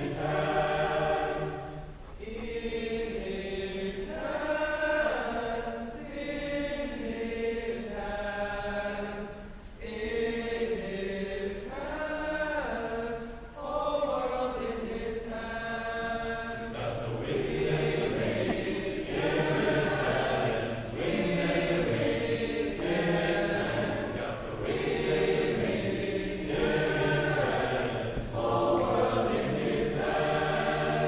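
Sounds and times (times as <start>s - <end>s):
large choir singing: 0.0s - 31.0s.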